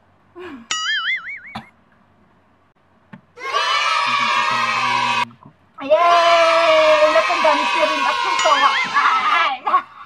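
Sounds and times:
children cheering: 3.4 - 9.7.

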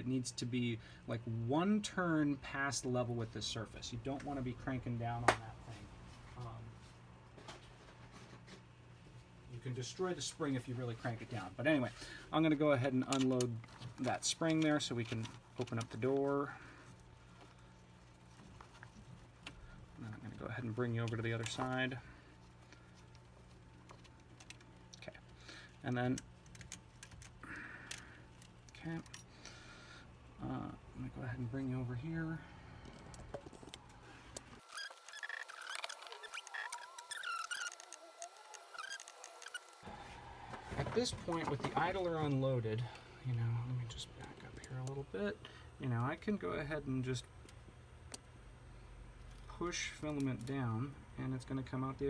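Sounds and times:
low steady hum: 0.0 - 52.0
plastic parts rattling: 34.4 - 39.8.

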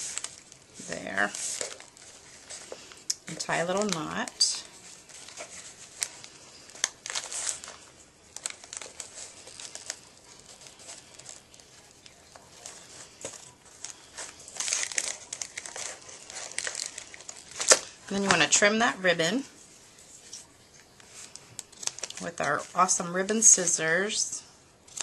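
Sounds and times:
cellophane bag crinkling: 0.0 - 18.4, 21.0 - 22.8.

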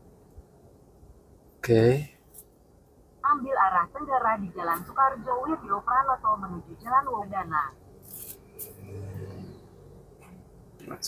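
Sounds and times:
low hum in car cabin: 0.0 - 11.0
rubbing and brushing handling noise: 8.0 - 8.7.

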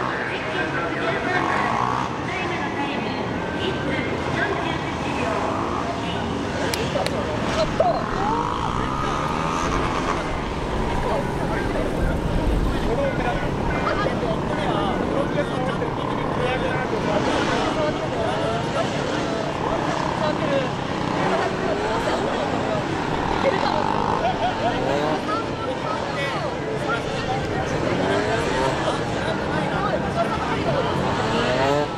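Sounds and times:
motorcycle engine revving: 0.1 - 2.4, 4.2 - 31.9.

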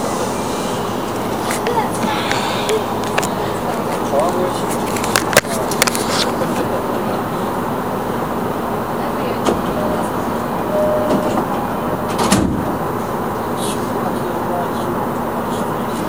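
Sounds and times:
train carriage running noise: 0.0 - 16.0.

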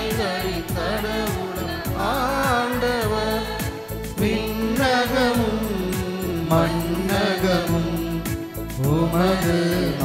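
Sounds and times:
hymn singing: 0.0 - 10.0
instrumental accompaniment: 0.0 - 10.0.

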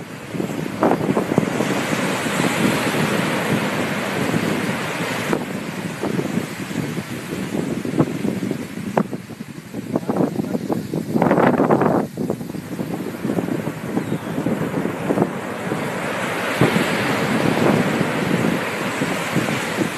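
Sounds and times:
ocean surf washing up beach: 0.0 - 19.9
wind buffeting microphone: 0.0 - 19.9.

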